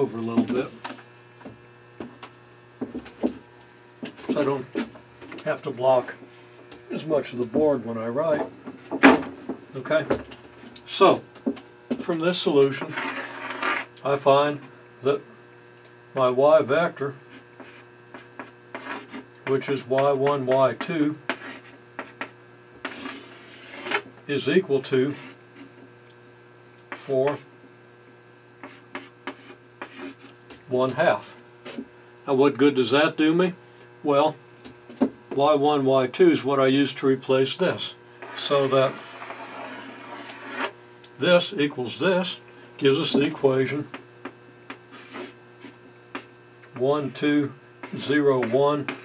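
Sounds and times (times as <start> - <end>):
low electrical hum: 0.0 - 49.0
chalk scraping on blackboard: 12.7 - 13.9, 17.3 - 24.1, 25.1 - 25.7, 26.9 - 27.4, 28.6 - 30.4, 38.2 - 40.8, 44.8 - 46.3, 47.8 - 49.0
chalk tapping and scratching: 12.7 - 13.9, 17.3 - 24.1, 26.9 - 27.4, 28.6 - 30.4, 38.2 - 40.8, 43.1 - 46.3, 47.8 - 49.0.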